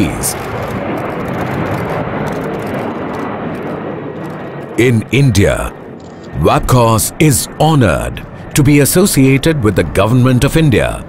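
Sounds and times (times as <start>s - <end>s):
jet airliner engines roaring: 0.0s - 11.0s.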